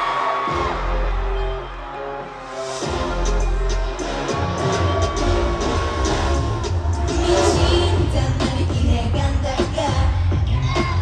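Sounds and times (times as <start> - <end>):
crowd cheering: 0.0 - 8.4
pop song over sound system: 0.0 - 11.0.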